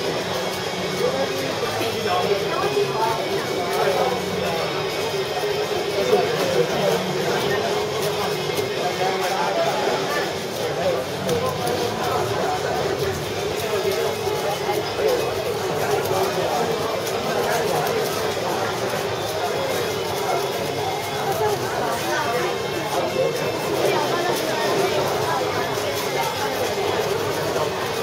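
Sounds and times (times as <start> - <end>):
chatter of many voices: 0.0 - 28.0.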